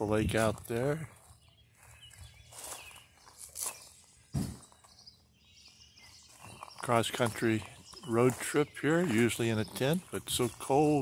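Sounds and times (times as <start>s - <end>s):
footsteps on gravel: 0.0s - 11.0s
soft thump: 4.3s - 4.7s.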